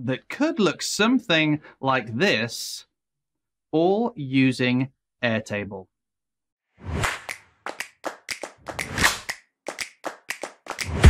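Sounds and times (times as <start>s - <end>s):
sharp taps and clicks: 7.2s - 11.0s.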